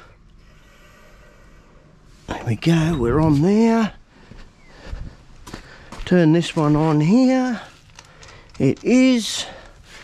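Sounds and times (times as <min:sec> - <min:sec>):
faint footsteps: 0:02.1 - 0:10.0
handling sounds with light clicks: 0:07.6 - 0:09.8.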